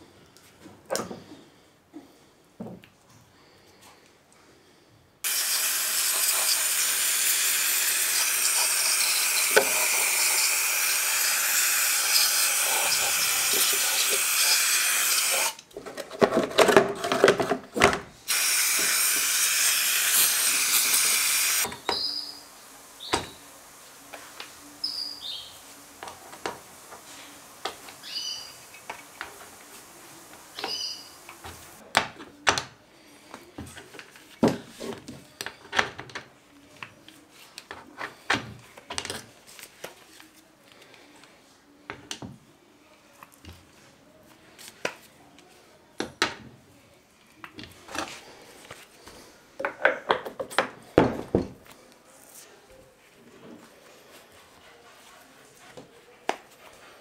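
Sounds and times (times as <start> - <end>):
loud pressurised hiss: 5.2 - 15.6, 18.3 - 31.8.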